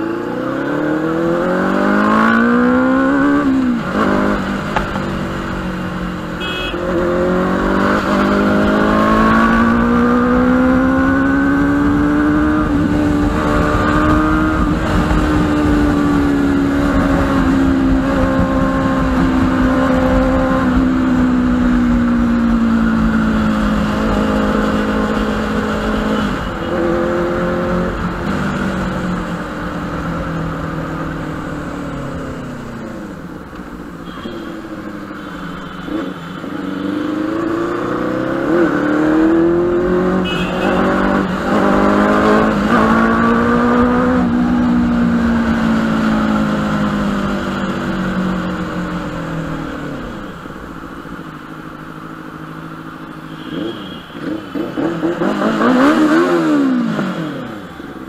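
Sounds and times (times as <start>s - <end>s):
motorcycle engine revving: 0.0s - 33.4s, 34.0s - 50.3s, 51.1s - 58.0s.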